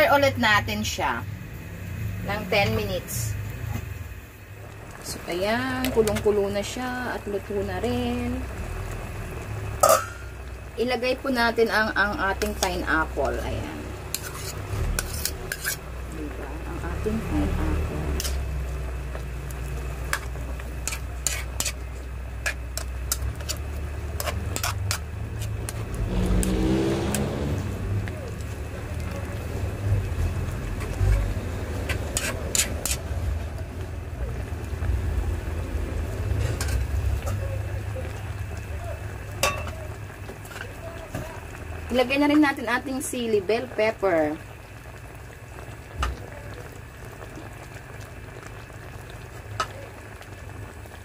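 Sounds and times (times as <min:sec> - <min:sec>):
metal spoon scraping metal pan: 0:14.0 - 0:15.9, 0:18.1 - 0:18.5, 0:20.8 - 0:25.5, 0:31.8 - 0:33.1
steady low rumble: 0:15.8 - 0:26.5, 0:27.1 - 0:40.3.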